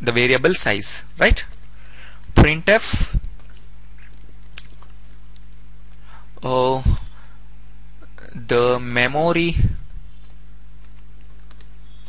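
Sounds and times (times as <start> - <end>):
low electrical hum: 0.0 - 12.0
keyboard typing clicks: 10.2 - 12.0.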